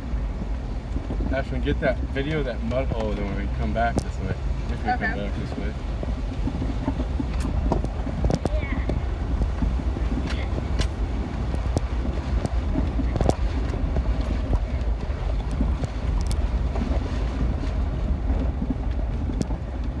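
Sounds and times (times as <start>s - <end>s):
knocks and rattles over ruts: 0.0s - 20.0s
vehicle engine and tyres rumbling: 0.0s - 20.0s.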